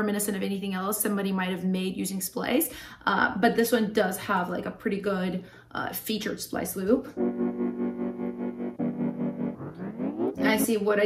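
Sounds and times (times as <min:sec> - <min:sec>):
keyboard chord loop with tremolo: 0:07.2 - 0:10.7.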